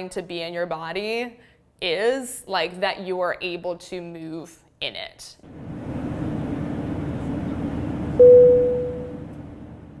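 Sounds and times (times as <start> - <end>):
clear ringing tone: 8.2 - 9.3.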